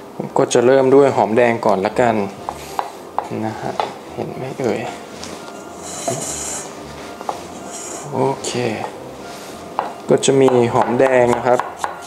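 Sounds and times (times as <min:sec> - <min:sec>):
knife knocking on wooden board: 0:09.8 - 0:12.0.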